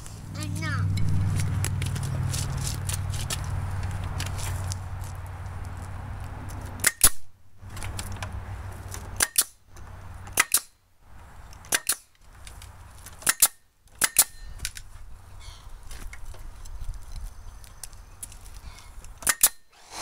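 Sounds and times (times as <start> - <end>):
pneumatic nailer firing: 6.8 - 7.2, 9.2 - 9.6, 10.4 - 10.7, 11.7 - 12.1, 13.2 - 14.4, 19.2 - 20.0.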